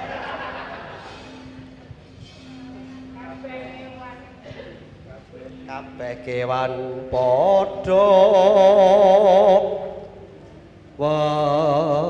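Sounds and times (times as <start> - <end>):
man singing through a microphone: 5.6 - 10.2, 11.0 - 12.0.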